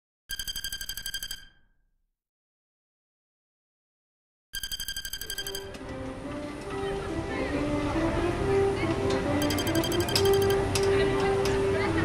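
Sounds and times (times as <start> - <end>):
rapid high electronic ticks: 0.3 - 1.6, 4.6 - 5.8, 9.4 - 10.9
background music with held tones: 5.2 - 12.0.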